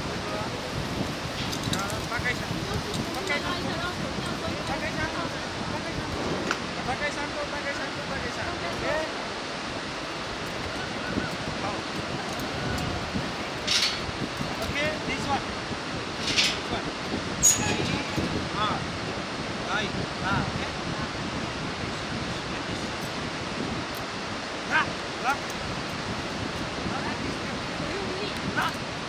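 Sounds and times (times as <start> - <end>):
fast river rushing: 0.0 - 29.0
wind: 0.0 - 29.0.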